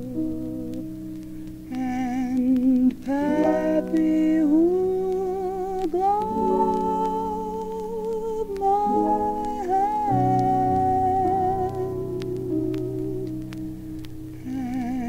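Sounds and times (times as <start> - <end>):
woman singing jazz with vibrato: 0.0 - 13.7, 14.3 - 15.0
record surface clicks: 0.0 - 15.0.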